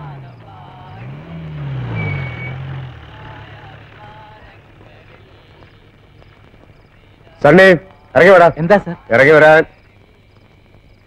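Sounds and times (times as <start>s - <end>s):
vehicle engine: 0.0s - 9.1s.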